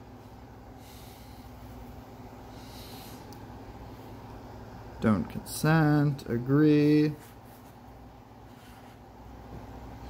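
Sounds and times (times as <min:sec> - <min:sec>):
low steady hum: 0:00.0 - 0:10.0
person breathing near microphone: 0:00.2 - 0:04.2.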